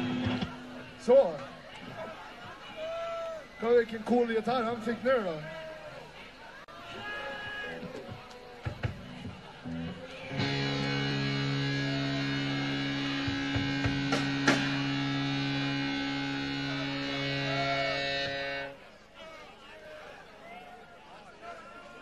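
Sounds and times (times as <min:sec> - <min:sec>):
electric guitar chord ringing: 0:00.0 - 0:00.5, 0:09.7 - 0:18.8
electric guitar plucks: 0:00.0 - 0:00.8, 0:08.8 - 0:18.8.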